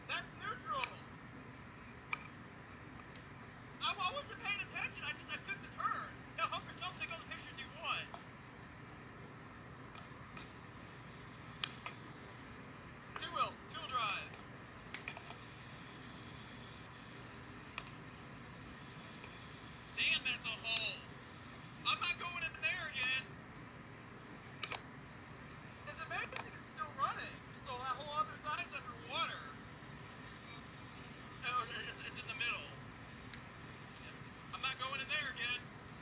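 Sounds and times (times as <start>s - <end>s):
low steady hum: 0.0s - 36.0s.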